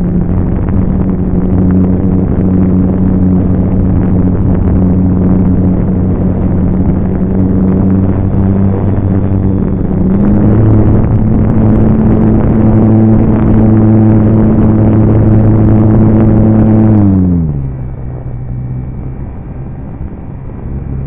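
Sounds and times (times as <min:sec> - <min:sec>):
model airplane motor and propeller: 0:00.0 - 0:18.3.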